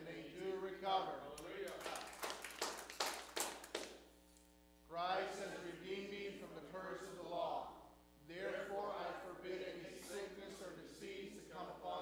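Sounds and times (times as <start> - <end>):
hand clapping: 1.4 - 4.1.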